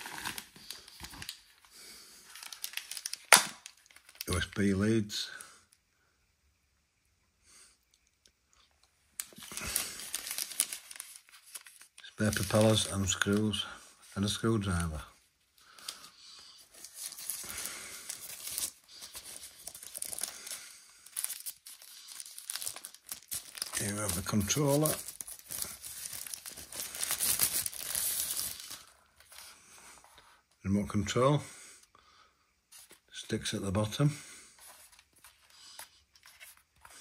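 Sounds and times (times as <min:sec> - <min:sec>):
loud sharp plastic crackle: 0:00.0 - 0:04.5, 0:09.2 - 0:13.5, 0:15.6 - 0:29.0
plastic packaging crinkling: 0:00.0 - 0:04.8, 0:09.2 - 0:15.0, 0:15.6 - 0:29.5.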